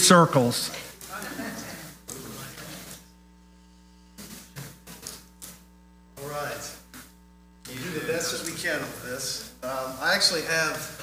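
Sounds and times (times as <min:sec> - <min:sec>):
faint mains hum: 0:00.0 - 0:11.0.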